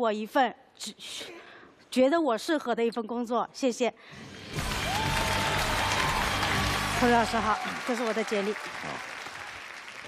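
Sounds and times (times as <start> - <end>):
background music: 4.0 - 8.8
audience applauding: 4.6 - 10.0.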